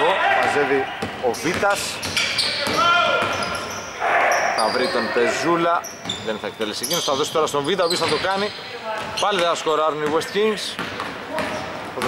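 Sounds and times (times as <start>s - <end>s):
shoes squeaking: 0.3s - 12.0s.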